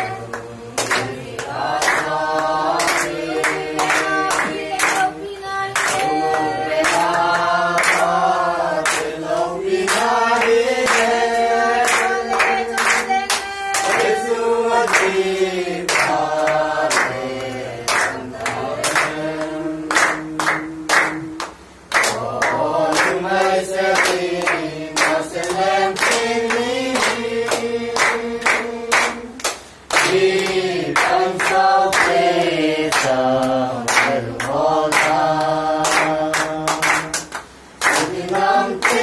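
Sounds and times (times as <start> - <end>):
hand-clapping: 0.0 - 39.0
young voices singing together: 0.0 - 39.0.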